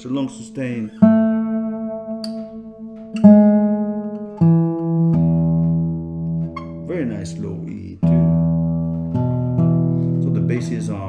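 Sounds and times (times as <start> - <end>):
classical guitar bass notes: 0.0 - 11.0.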